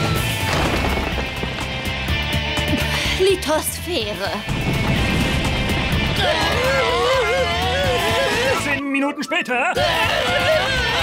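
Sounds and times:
cartoon background music: 1.9s - 11.0s.

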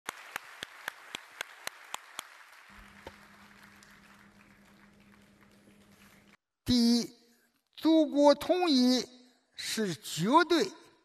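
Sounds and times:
faint audience applause: 0.0s - 6.4s.

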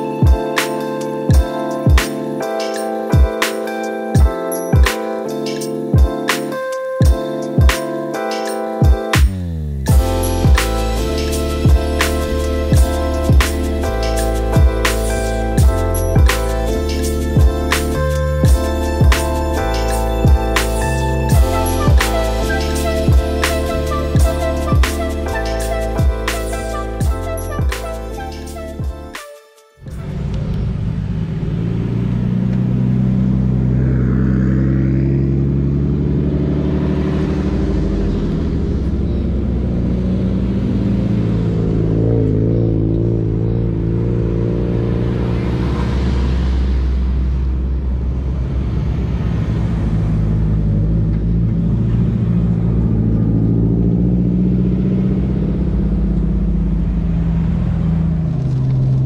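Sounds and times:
car engine drone: 0.0s - 29.2s, 29.8s - 59.0s
road rumble: 0.0s - 29.2s, 29.8s - 59.0s.

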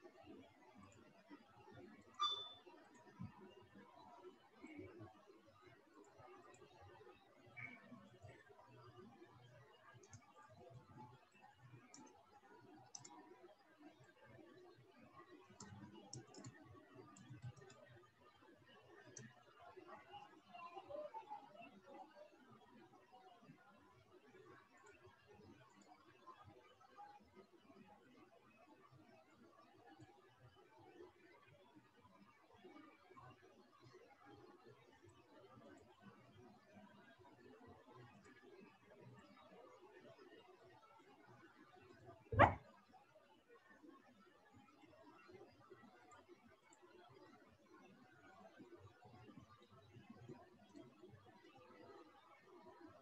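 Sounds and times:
computer keyboard clicking: 12.9s - 13.2s, 15.6s - 16.6s, 17.2s - 17.8s
short bark-like sound: 42.4s - 42.6s.

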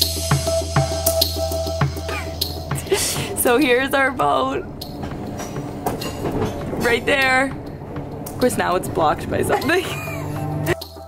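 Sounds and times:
moving train rumble: 0.0s - 11.0s
wheels clicking on rails: 1.8s - 11.0s.

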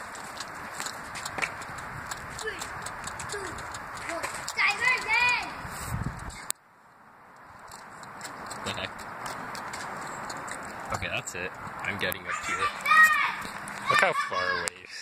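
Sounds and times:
branches and leaves rustling: 0.0s - 14.7s.

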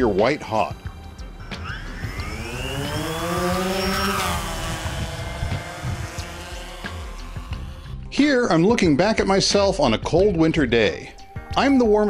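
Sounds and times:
drone motors whining: 0.0s - 8.6s.

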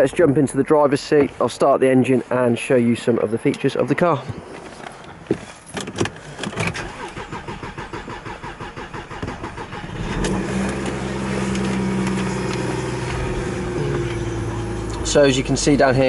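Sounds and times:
ignition clicks: 5.8s - 13.2s
starter cranking engine: 6.5s - 13.1s
diesel engine idling: 7.0s - 16.0s.

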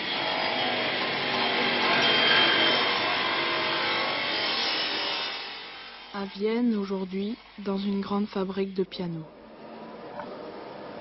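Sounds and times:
power tool rasping against wood: 0.0s - 8.7s.

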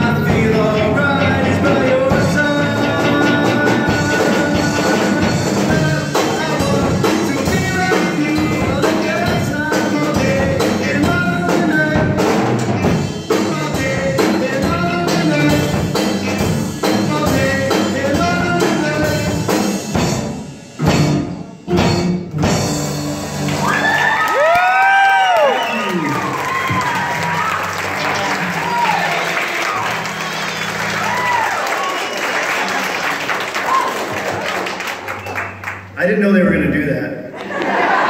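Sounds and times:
person singing: 0.0s - 12.5s, 13.3s - 16.0s, 16.8s - 19.5s
rock band playing: 0.0s - 37.0s
audience applause and cheering: 23.2s - 36.0s, 37.4s - 38.0s.

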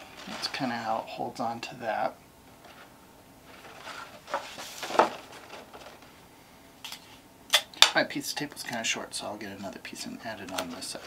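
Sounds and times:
paper rustling: 0.0s - 1.1s, 2.5s - 6.2s, 10.3s - 11.0s.

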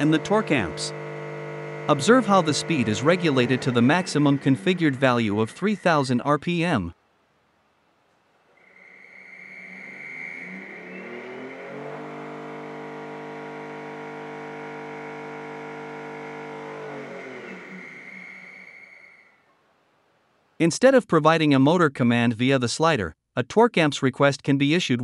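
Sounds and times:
electric motor whine: 0.0s - 5.1s, 9.6s - 19.0s
steady high tone: 0.0s - 6.7s, 8.6s - 19.4s.

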